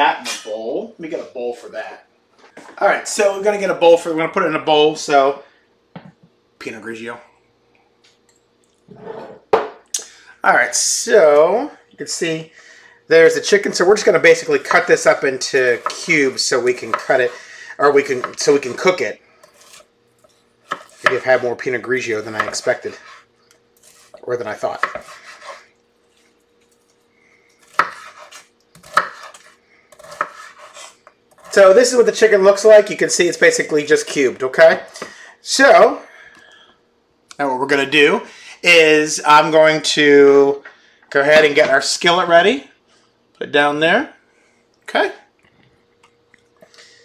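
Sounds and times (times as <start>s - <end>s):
knife scraping: 14.7s - 21.2s, 22.0s - 27.0s, 27.6s - 32.0s.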